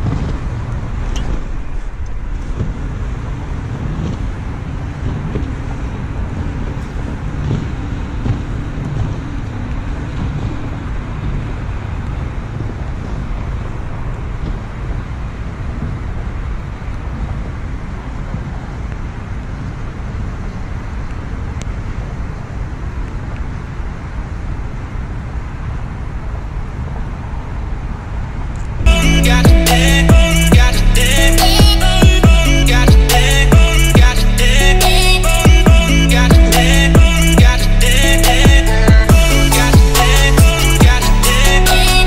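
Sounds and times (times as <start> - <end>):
wind rumble on microphone: 0.0 - 42.0.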